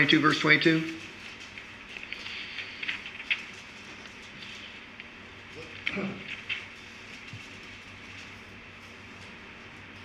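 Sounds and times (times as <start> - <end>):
pages turning: 0.9 - 5.1, 5.7 - 9.4.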